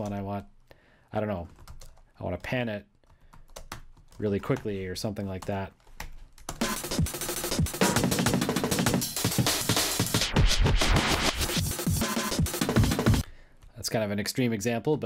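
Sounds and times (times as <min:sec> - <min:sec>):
chopped electronic breakbeat: 0:06.6 - 0:13.2
pitch-bent drum break: 0:06.6 - 0:13.2.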